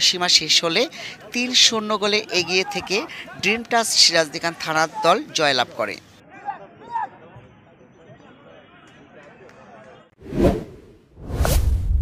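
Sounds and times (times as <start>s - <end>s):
whoosh sound effects: 10.2s - 12.0s.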